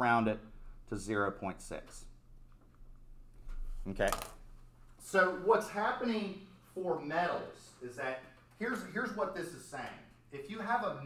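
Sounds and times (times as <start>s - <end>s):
man speaking: 0.0s - 2.1s, 5.0s - 11.0s.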